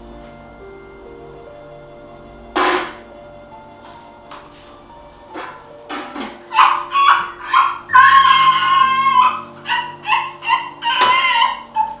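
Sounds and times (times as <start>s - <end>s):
background music with held chords: 0.0s - 12.0s.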